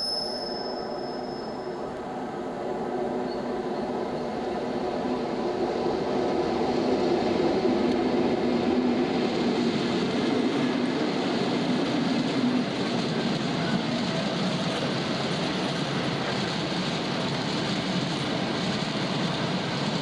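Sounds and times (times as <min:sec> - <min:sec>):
diesel locomotive engine drone: 0:00.0 - 0:20.0.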